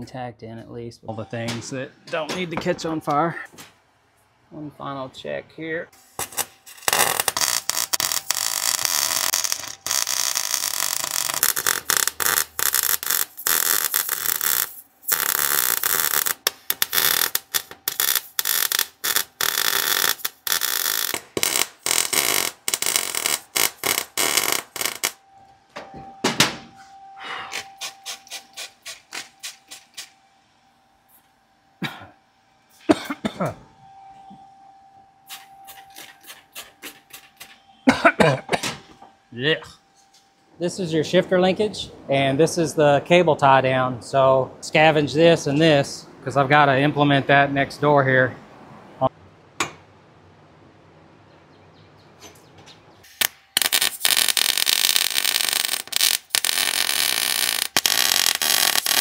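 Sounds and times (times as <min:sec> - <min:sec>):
welding arc crackling: 0:06.0 - 0:25.2, 0:27.5 - 0:30.2, 0:53.1 - 0:59.0
spray bottle squirts: 0:35.3 - 0:37.5.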